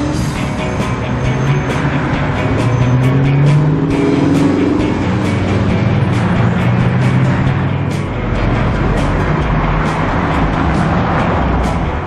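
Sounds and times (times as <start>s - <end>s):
cars passing on road: 0.0s - 12.0s.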